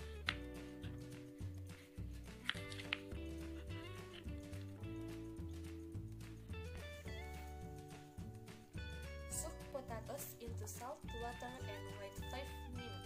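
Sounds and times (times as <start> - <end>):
background music with bass line: 0.0 - 13.0.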